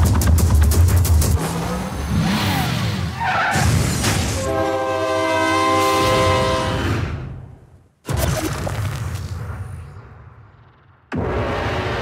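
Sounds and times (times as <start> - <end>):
train horn chord: 4.4 - 6.8.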